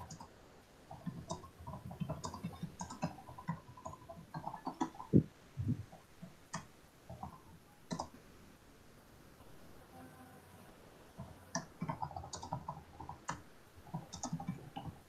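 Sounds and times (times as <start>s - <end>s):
keyboard clicking and tapping: 0.9s - 8.1s, 11.2s - 15.0s.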